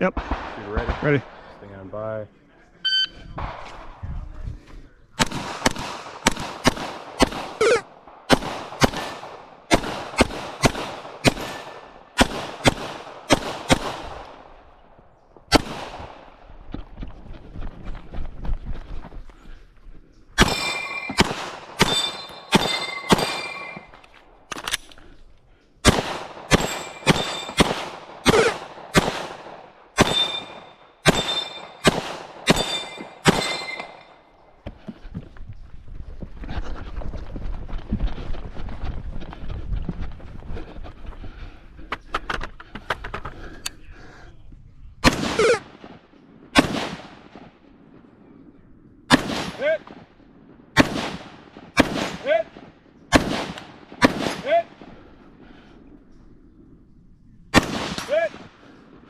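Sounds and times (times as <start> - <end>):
rapid gunshots: 5.2 - 14.5, 20.4 - 23.9, 25.8 - 34.0, 45.0 - 46.0, 46.6 - 47.5, 49.1 - 49.9, 50.8 - 54.8, 57.6 - 58.6
steel targets ringing: 20.4 - 21.2, 21.8 - 24.0, 26.6 - 27.6, 30.0 - 31.8, 32.5 - 34.2.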